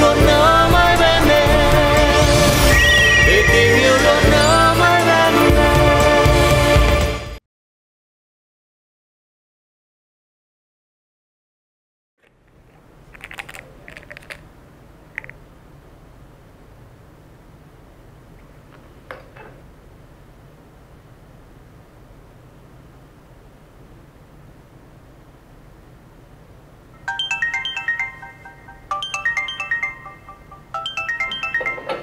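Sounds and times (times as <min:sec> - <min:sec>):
mobile phone ringtone: 0:02.6 - 0:04.4, 0:27.0 - 0:32.0
plastic cap clicking: 0:12.2 - 0:14.4, 0:15.2 - 0:15.4.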